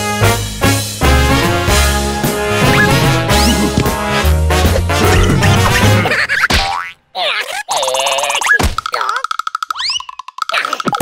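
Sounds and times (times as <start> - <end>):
bouncy cartoon music: 0.0 - 11.0
comic sound effects: 2.6 - 4.1, 4.7 - 6.8.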